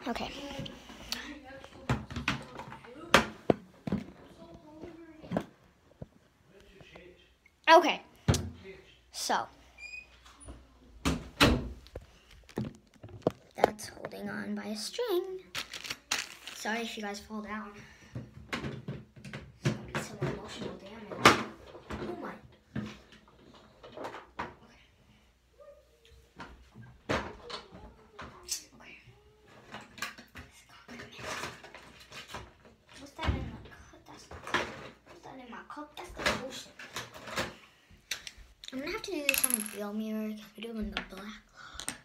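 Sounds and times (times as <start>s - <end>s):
girl's voice: 0.0s - 0.8s, 13.6s - 15.5s, 38.7s - 41.8s.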